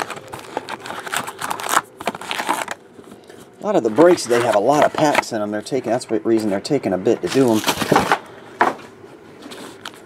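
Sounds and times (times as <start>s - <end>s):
foil packs rustling: 0.0s - 8.3s.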